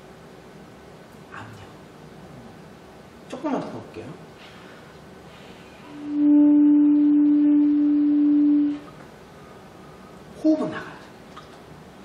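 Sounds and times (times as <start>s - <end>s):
alto saxophone steady note: 5.9s - 8.9s.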